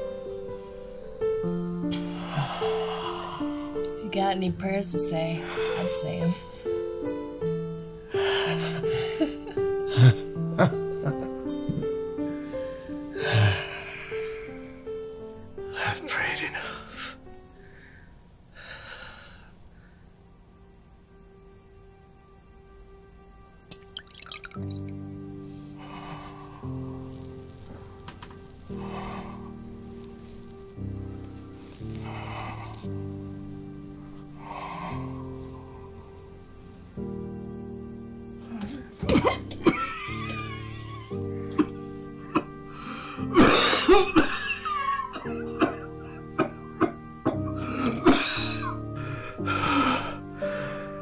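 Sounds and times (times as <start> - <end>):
slow sustained music chords: 0.0 - 51.0
water dripping and splashing: 23.7 - 25.4
man coughing and rasping: 39.0 - 39.9, 43.4 - 47.0, 47.8 - 48.7.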